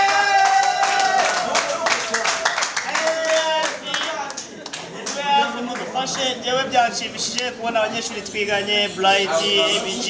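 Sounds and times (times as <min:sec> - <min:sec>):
audience clapping: 0:00.0 - 0:06.3
voices calling out: 0:04.4 - 0:10.0.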